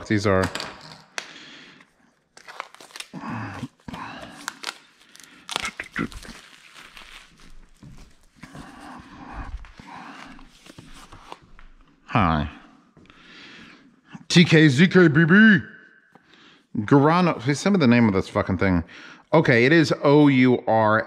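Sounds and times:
packaging crinkling and rustling: 0:02.3 - 0:08.8.

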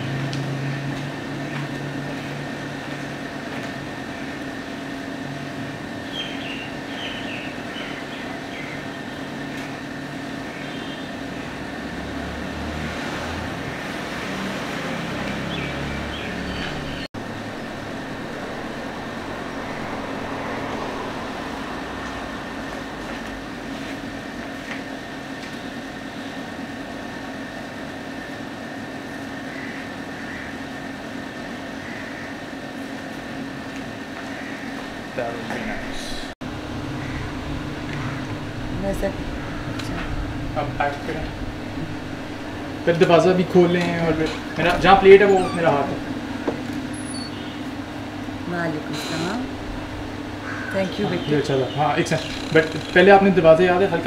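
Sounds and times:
distant road traffic rumble: 0:00.0 - 0:26.4, 0:33.2 - 0:54.0
constant hum: 0:15.1 - 0:54.0
low rumble: 0:16.8 - 0:23.6, 0:35.8 - 0:46.9.

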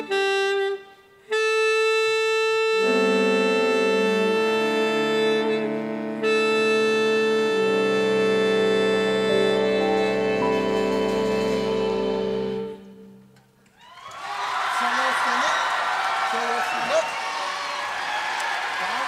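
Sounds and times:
wind band playing chords: 0:00.0 - 0:13.4.

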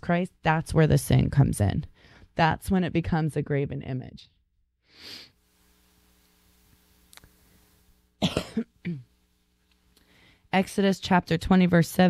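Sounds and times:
woman coughing: 0:08.2 - 0:09.1.

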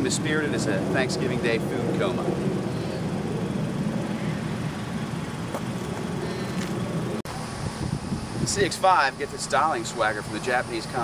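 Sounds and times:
passing traffic: 0:00.0 - 0:11.0
wind on microphone: 0:06.6 - 0:08.9.

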